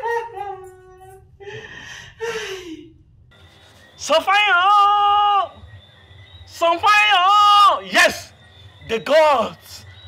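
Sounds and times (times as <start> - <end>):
woman laughing: 0.0 - 1.6.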